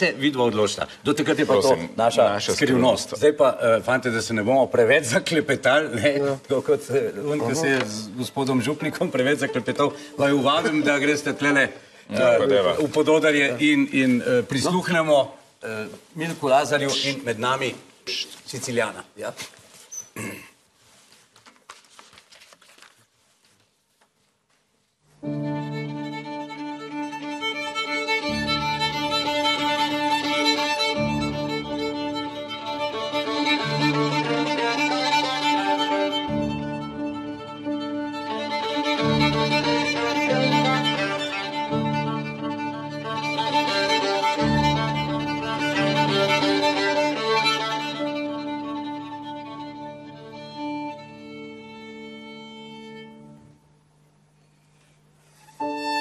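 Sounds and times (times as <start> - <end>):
violin and piano playing: 0.0 - 14.9, 25.2 - 53.6, 55.4 - 56.0.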